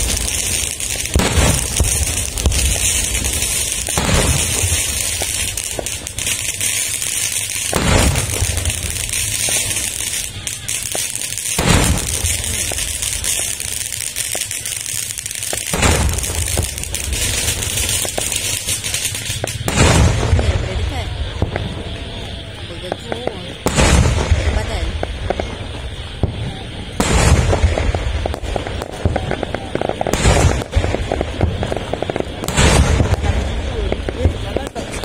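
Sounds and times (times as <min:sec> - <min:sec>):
distant cannon booms: 0:00.0 - 0:06.8, 0:07.6 - 0:13.5, 0:15.5 - 0:18.4, 0:19.0 - 0:35.0
steady high hiss: 0:00.0 - 0:35.0.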